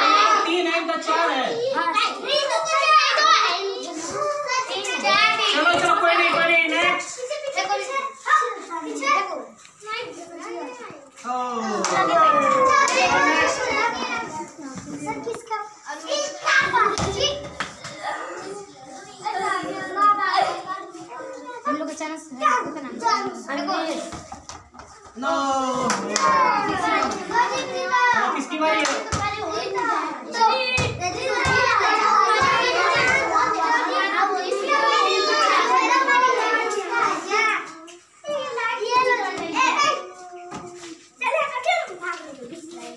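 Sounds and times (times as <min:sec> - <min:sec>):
children shouting and chattering: 0:00.0 - 0:42.9.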